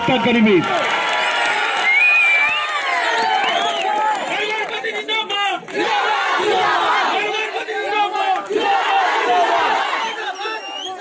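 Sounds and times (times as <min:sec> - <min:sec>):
crowd shouting: 0:00.0 - 0:11.0.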